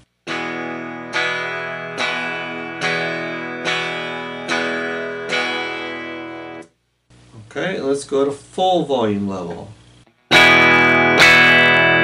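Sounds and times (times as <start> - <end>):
electric guitar chord strummed: 0.2 - 6.7, 10.3 - 12.0.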